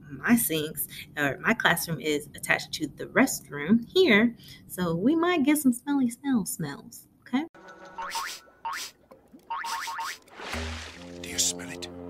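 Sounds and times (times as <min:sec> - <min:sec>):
cartoon sound effects with gliding pitch: 0:07.8 - 0:08.9
low sustained music chord: 0:10.6 - 0:12.0.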